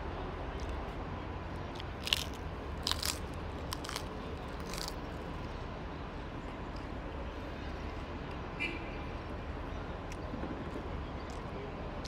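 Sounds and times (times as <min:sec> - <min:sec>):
crunching crisp food: 0:01.6 - 0:05.5.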